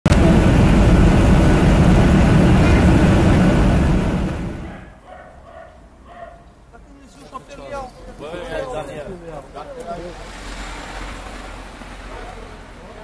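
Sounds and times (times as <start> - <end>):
aircraft roar in flight: 0.1 - 4.8.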